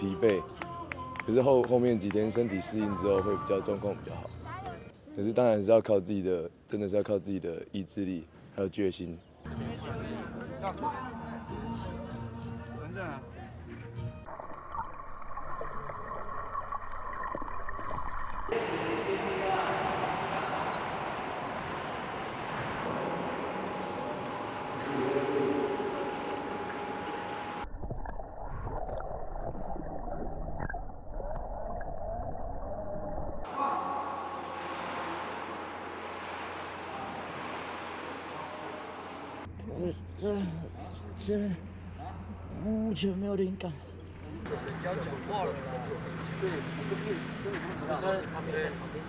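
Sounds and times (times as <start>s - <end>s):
underwater bubbling and gurgling: 14.3s - 18.6s, 20.4s - 33.5s
water splashing and churning: 14.3s - 27.9s, 33.5s - 39.5s.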